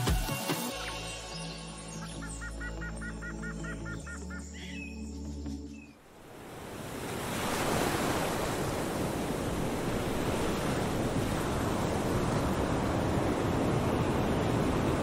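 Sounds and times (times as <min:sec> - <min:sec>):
ocean surf breaking on beach: 0:06.0 - 0:15.0.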